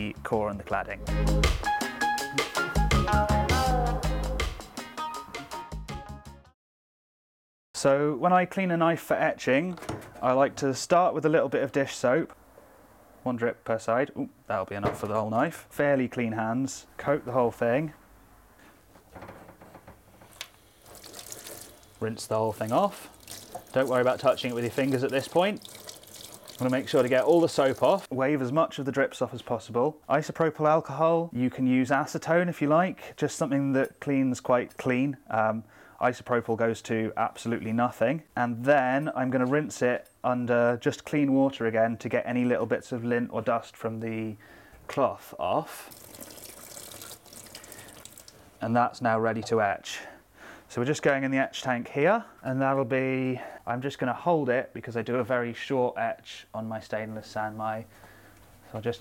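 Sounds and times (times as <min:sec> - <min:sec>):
tap water splashing into sink: 0:20.4 - 0:28.1, 0:45.9 - 0:48.4.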